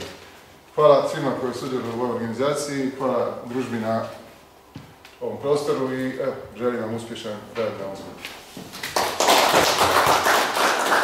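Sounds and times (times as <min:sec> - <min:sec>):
audience applauding: 0:08.9 - 0:11.0.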